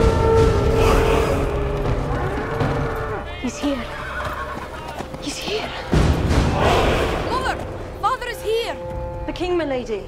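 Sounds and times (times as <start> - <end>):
hoofbeats: 0.0 - 9.4
horse neighing: 3.8 - 4.9.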